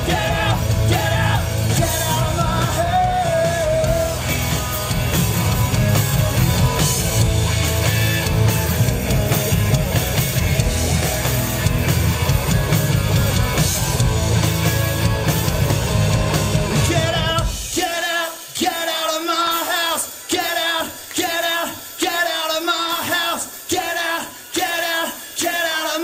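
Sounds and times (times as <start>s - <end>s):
electric guitar: 0.0s - 17.8s
drum kit: 0.0s - 26.0s.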